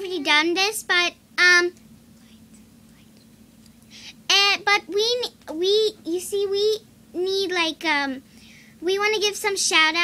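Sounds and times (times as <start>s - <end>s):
faint steady hum: 0.0s - 10.0s
low room hiss: 0.0s - 10.0s
faint whispering: 2.2s - 3.4s.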